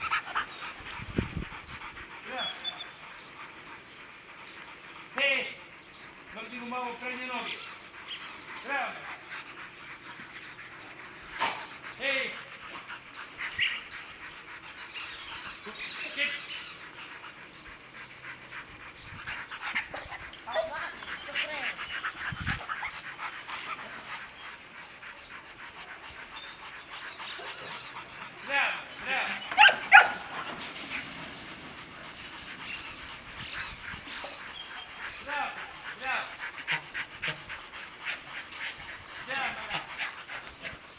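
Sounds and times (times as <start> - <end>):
dog panting rapidly: 0.0 - 40.9
dog barking: 29.6 - 30.2.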